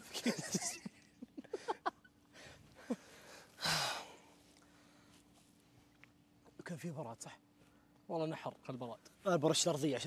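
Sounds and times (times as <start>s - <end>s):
man sighing heavily: 2.8s - 4.3s.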